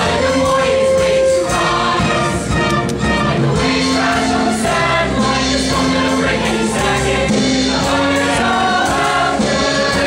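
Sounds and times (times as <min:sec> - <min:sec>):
choir singing in chorus: 0:00.0 - 0:10.0.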